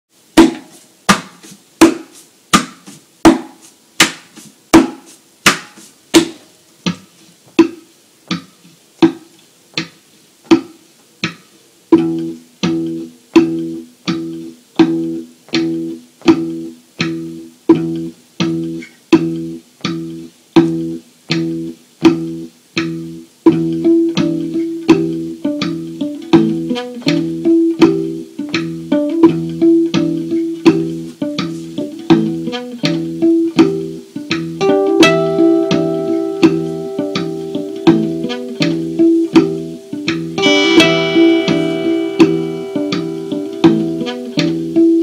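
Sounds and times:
hand striking guitar body: 0:00.4 - 0:11.4
low plucked guitar notes: 0:12.0 - 0:45.0.

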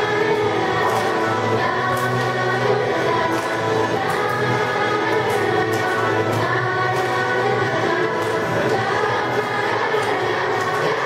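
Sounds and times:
group singing a church song: 0:00.0 - 0:11.0.

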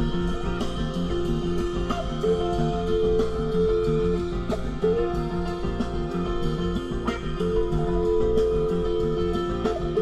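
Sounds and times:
electric guitar sustained notes: 0:00.0 - 0:10.0.

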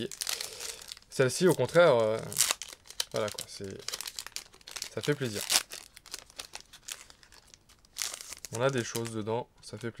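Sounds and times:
foil wrapper crinkling: 0:00.0 - 0:09.3.

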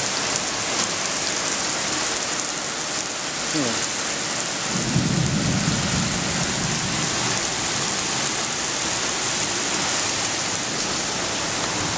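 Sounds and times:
rain falling: 0:00.0 - 0:11.9.

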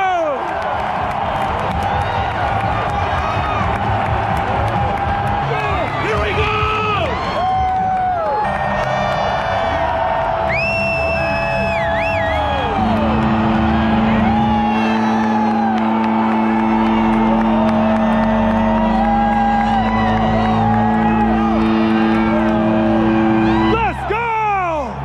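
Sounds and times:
crowd yelling and whooping: 0:00.0 - 0:25.0
music over loudspeakers: 0:01.4 - 0:25.0
long low chord: 0:11.2 - 0:24.1.

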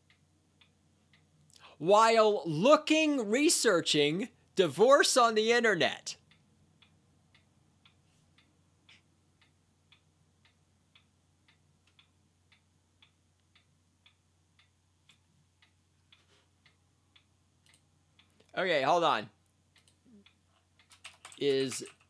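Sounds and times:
faint ticking: 0:00.0 - 0:01.8, 0:06.2 - 0:22.0.

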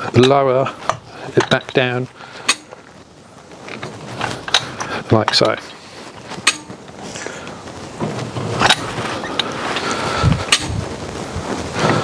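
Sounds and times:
faint creaking: 0:00.0 - 0:12.0.

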